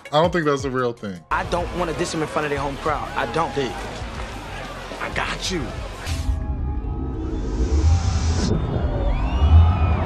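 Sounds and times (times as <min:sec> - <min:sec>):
deep bass rumble: 0:06.1 - 0:10.0.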